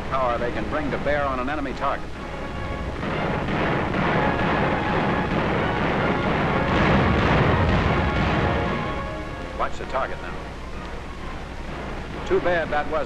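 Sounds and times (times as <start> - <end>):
heavy machine-gun rapid fire: 3.0 - 9.0.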